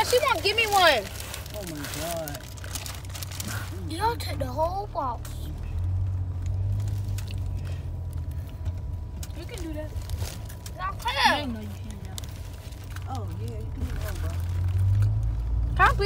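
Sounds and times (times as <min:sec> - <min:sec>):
car rumble from inside cabin: 0:00.0 - 0:16.0
child's voice calling: 0:10.8 - 0:11.6.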